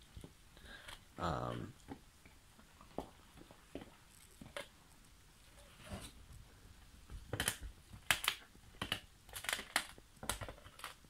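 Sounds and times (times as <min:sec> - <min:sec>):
dog crunching frozen bone: 0:07.2 - 0:11.0.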